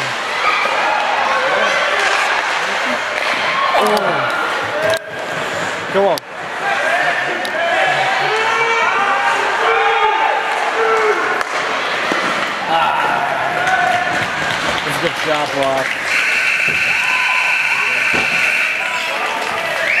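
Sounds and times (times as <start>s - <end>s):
people shouting: 6.6s - 11.4s, 15.8s - 20.0s
referee's whistle blast: 15.9s - 19.0s
hockey stick or puck knocks: 18.1s - 18.6s.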